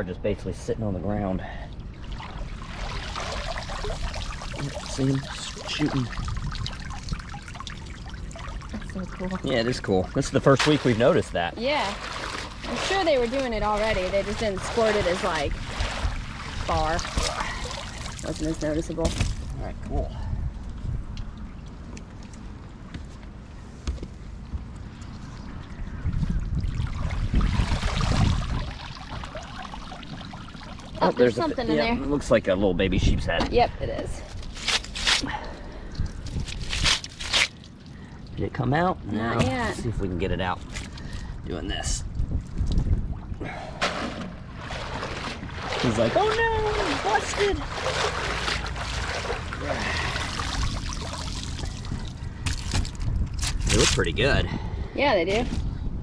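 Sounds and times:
water trickling and dripping: 1.5 - 19.5, 25.0 - 31.9, 37.5 - 38.9, 44.6 - 52.7.

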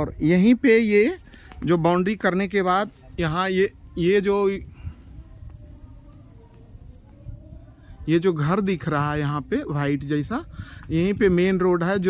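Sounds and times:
high insect chirp: 6.9 - 7.1.

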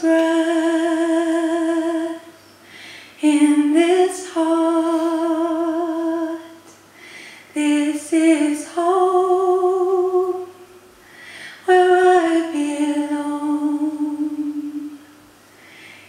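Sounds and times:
woman singing unaccompanied: 0.0 - 2.4, 3.2 - 6.7, 7.5 - 10.8, 11.6 - 15.1.

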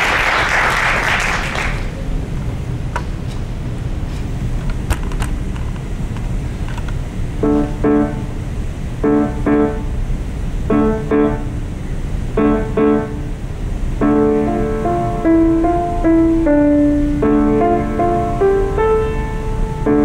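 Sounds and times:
grand piano chords: 7.3 - 20.0.

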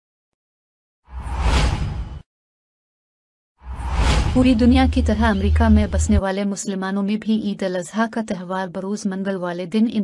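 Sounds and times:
whoosh sound effect: 3.6 - 5.6.

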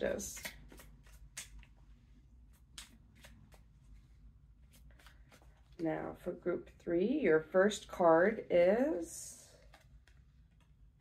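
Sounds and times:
cards flicking and sliding: 0.2 - 1.8, 2.4 - 3.8.

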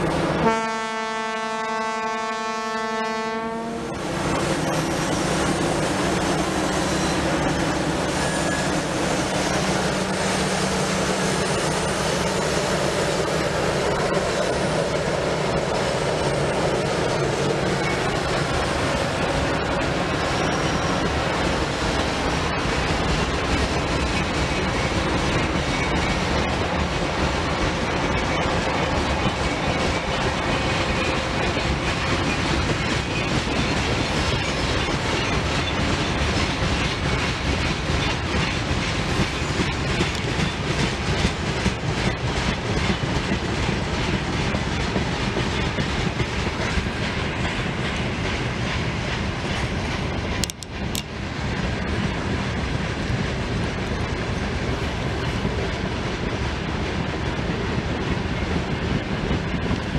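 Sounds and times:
freight train wheels clattering: 3.8 - 59.9.

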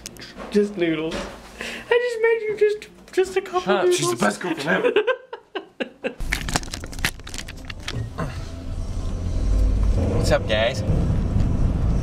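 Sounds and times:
person laughing: 8.0 - 8.5.

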